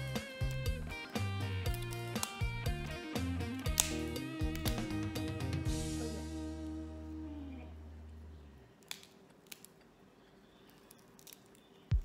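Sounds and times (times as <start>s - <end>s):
background music: 0.0s - 8.0s
crustacean shell cracking: 1.6s - 2.5s, 3.6s - 5.0s, 8.8s - 9.9s, 10.7s - 12.0s.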